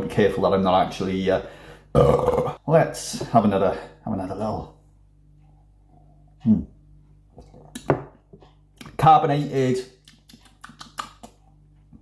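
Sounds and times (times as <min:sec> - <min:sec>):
man humming hmm: 0:01.9 - 0:02.6.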